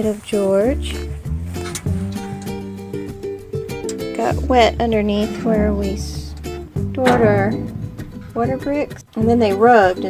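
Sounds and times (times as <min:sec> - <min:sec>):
plucked strings tune: 0:03.6 - 0:09.5.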